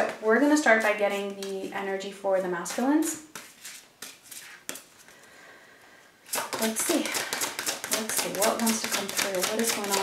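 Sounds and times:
cards rustling: 0:06.3 - 0:10.0.

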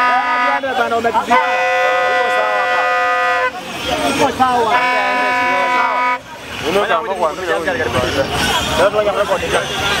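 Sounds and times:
vehicle horn blast: 0:00.0 - 0:03.9, 0:04.7 - 0:06.3
crowd shouting and talking: 0:00.0 - 0:10.0.

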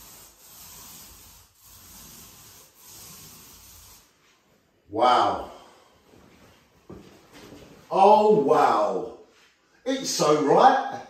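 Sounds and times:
paint roller rubbing on wall: 0:00.0 - 0:04.8.

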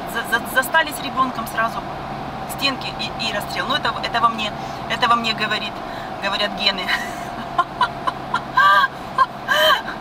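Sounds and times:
car hum: 0:00.0 - 0:10.0
woman laughing: 0:06.9 - 0:10.0.

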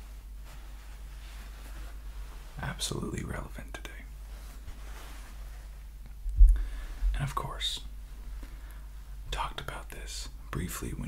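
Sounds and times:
man whispering: 0:02.6 - 0:04.2, 0:07.0 - 0:08.0, 0:09.2 - 0:11.0
low thump: 0:06.3 - 0:06.7.

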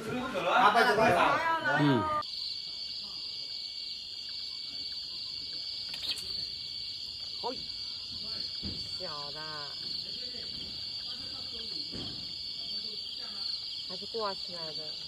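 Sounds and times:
night insects trilling: 0:00.0 - 0:15.0.

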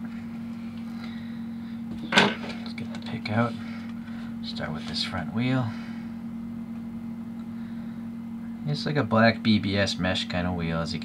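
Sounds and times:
low-pitched hum: 0:00.0 - 0:11.0.

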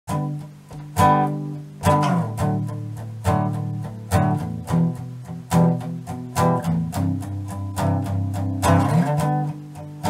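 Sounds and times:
acoustic guitar strumming: 0:00.1 - 0:10.0.

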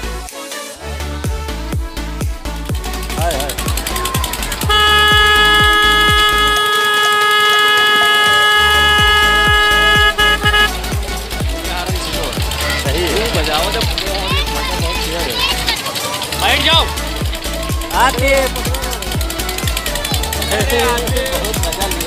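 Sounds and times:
dance music with beat: 0:01.2 - 0:11.8
horn steady note: 0:04.6 - 0:11.0
children's voices: 0:12.0 - 0:21.1.

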